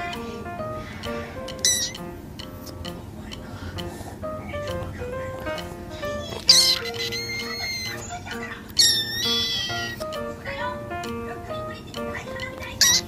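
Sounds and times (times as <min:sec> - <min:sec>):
background music: 0:00.0 - 0:13.0
kitten meowing: 0:01.6 - 0:02.0, 0:06.3 - 0:08.1, 0:08.7 - 0:10.0.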